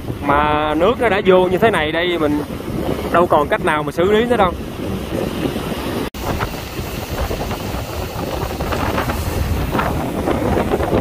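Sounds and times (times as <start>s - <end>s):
surf breaking on shore: 0.0s - 11.0s
water splashes: 0.0s - 11.0s
wind buffeting microphone: 0.0s - 11.0s.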